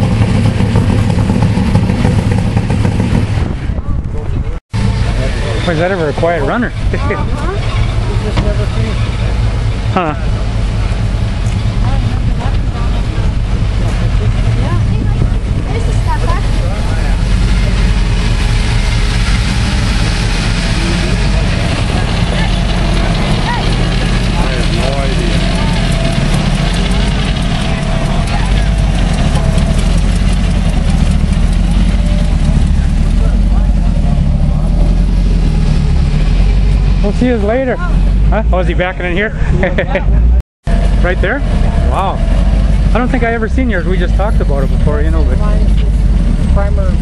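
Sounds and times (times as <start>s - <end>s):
car engines rumbling past: 0.0s - 47.0s
murmur of people talking: 3.6s - 35.6s.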